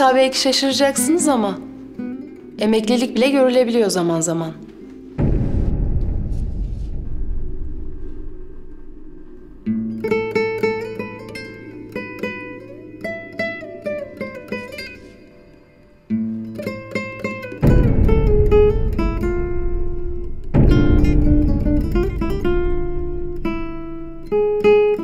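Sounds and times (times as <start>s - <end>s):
low boom: 4.8s - 15.1s, 17.6s - 24.8s
plucked guitar-like notes: 9.7s - 25.0s.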